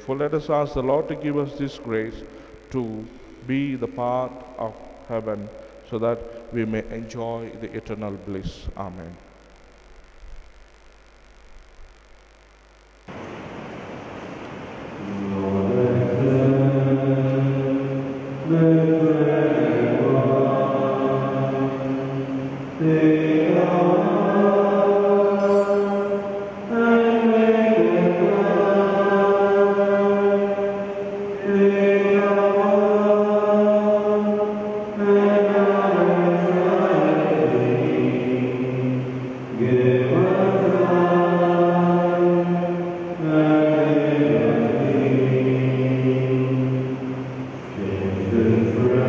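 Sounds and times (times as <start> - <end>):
hymn sung slowly: 0.0 - 9.4, 14.0 - 49.0.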